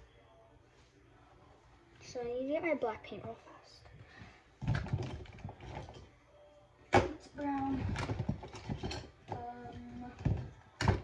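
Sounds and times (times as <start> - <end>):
rummaging objects being moved: 4.1 - 6.1, 7.3 - 11.0.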